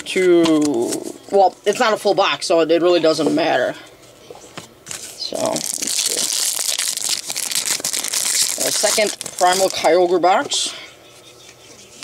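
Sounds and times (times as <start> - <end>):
foil wrapper crinkling: 4.9 - 10.2.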